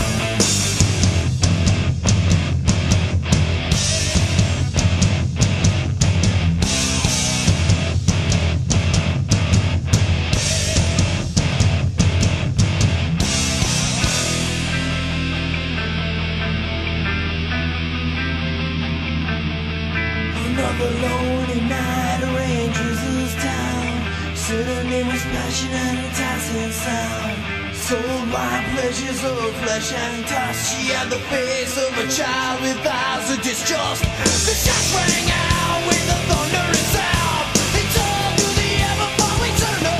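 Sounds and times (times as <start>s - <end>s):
held guitar and bass chord ringing: 0.0s - 31.6s
hard rock band playing: 0.0s - 39.9s.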